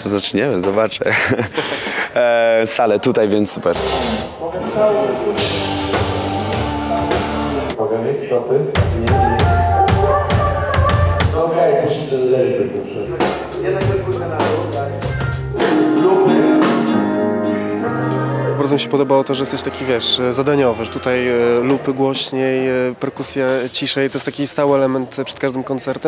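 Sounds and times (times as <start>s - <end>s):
drums: 0.0s - 2.1s, 3.5s - 7.8s, 8.6s - 18.0s, 22.9s - 26.0s
guitar: 3.7s - 7.8s, 13.2s - 22.4s.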